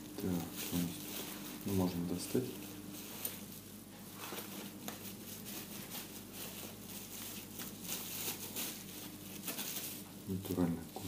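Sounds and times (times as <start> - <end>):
plastic wrapper rustling: 0.0 - 11.0.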